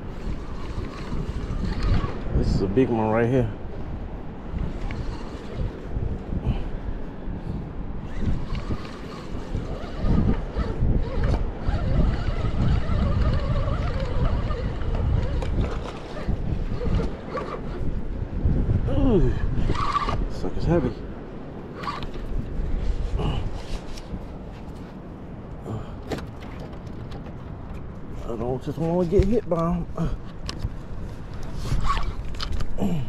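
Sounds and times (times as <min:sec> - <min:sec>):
wind buffeting microphone: 0:00.0 - 0:33.0.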